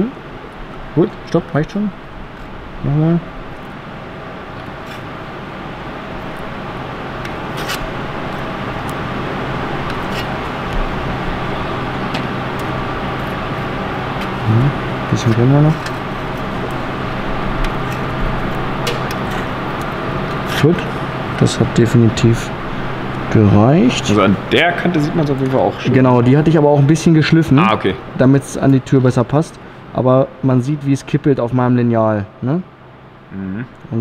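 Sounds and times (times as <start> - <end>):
machine hum with fixed tones: 0.0 - 34.0.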